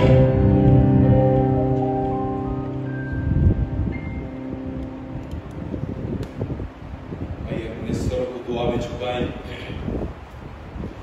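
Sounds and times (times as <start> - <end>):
sustained keyboard chord: 0.0 - 7.4
low uneven rumble: 0.0 - 11.0.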